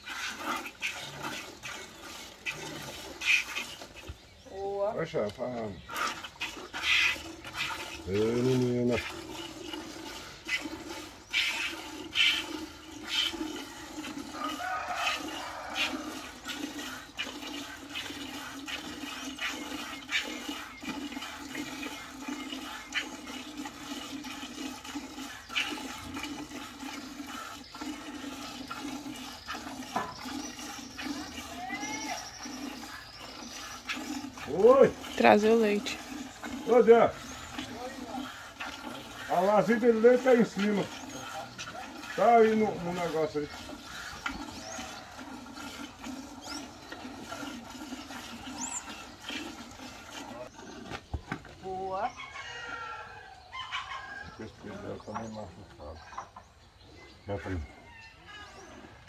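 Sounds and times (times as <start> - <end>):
milk squirting into pail: 0.0 - 4.5, 5.2 - 51.6.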